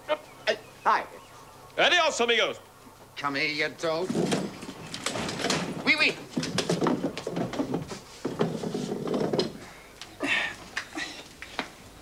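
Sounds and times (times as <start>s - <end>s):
men talking indistinctly: 1.8s - 4.4s.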